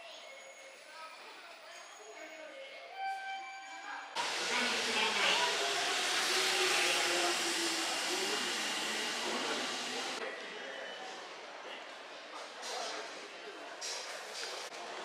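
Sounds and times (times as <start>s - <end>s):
train wheel and rail noise: 1.2s - 10.2s.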